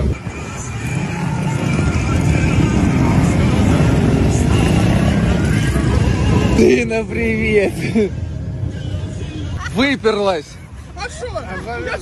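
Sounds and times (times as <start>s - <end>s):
cars and motorcycles driving: 0.0s - 12.0s.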